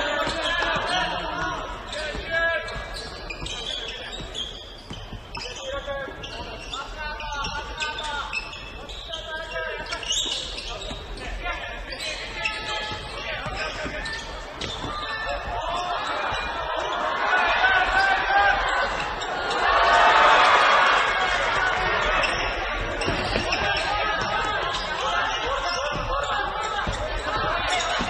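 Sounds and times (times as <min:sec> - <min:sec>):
players and spectators calling: 0:00.0 - 0:28.0.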